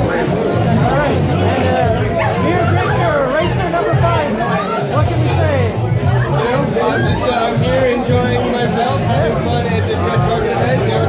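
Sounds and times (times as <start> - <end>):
background music: 0.0 - 11.0
people talking over each other: 0.0 - 11.0.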